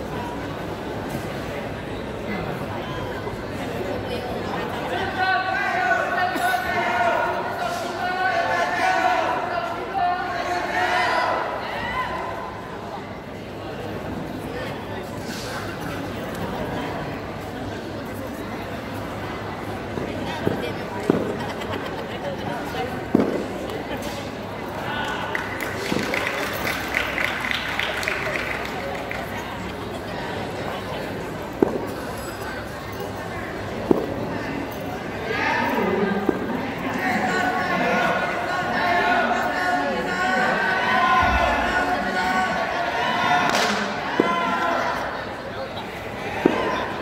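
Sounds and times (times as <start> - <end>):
crowd chatter echoing in hall: 0.0 - 47.0.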